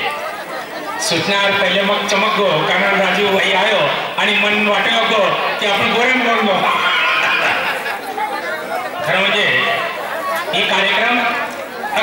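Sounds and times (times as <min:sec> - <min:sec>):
crowd chatter: 0:00.0 - 0:12.0
person speaking through microphone: 0:01.0 - 0:07.8.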